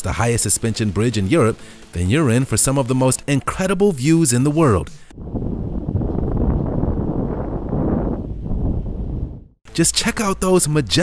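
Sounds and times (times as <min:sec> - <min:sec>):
wind noise on microphone: 0:05.1 - 0:09.6.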